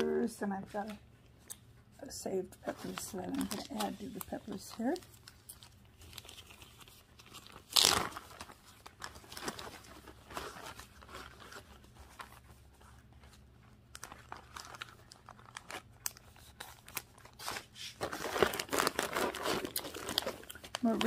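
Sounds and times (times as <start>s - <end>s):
plastic bags crinkling: 2.7s - 21.0s.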